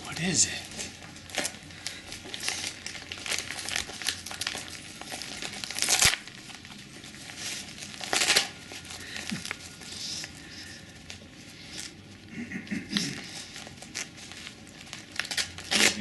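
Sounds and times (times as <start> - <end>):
wrapping paper crinkling and tearing: 0.0 - 16.0.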